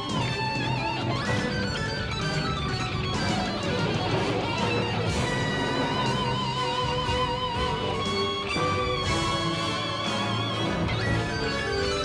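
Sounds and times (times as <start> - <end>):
electric guitar lead: 0.0 - 12.0
rock band and orchestra: 0.0 - 12.0.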